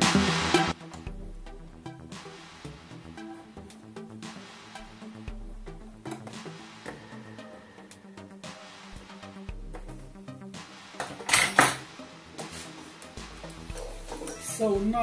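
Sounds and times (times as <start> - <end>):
electronic music with steady beat: 0.0 - 15.0.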